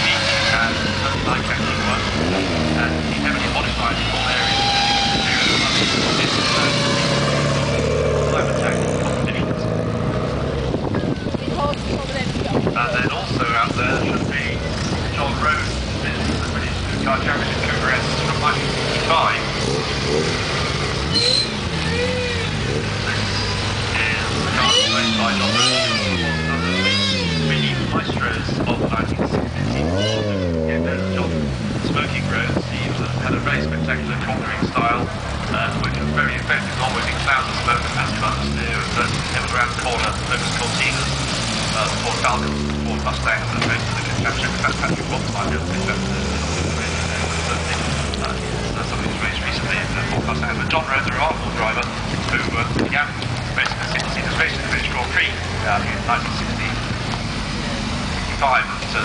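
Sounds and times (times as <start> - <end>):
cars driving past: 0.0 - 59.0
indistinct voices: 10.8 - 59.0.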